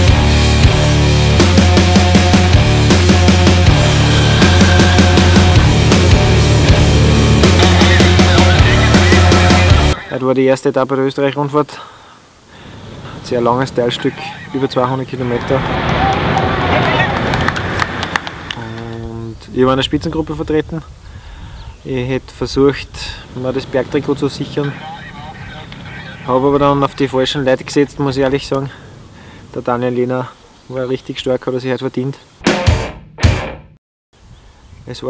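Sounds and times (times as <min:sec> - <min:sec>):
rushing outdoor noise: 0:00.0 - 0:31.5
man's drawn-out voice: 0:03.7 - 0:11.9, 0:13.2 - 0:17.3, 0:21.8 - 0:28.9
man speaking: 0:07.6 - 0:11.9, 0:13.2 - 0:17.3, 0:18.6 - 0:20.9, 0:21.8 - 0:28.8, 0:29.5 - 0:32.3.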